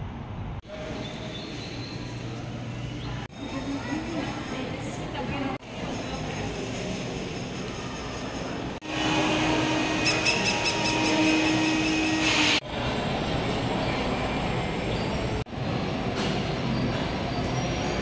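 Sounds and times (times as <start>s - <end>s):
machine whine: 6.3s - 16.3s.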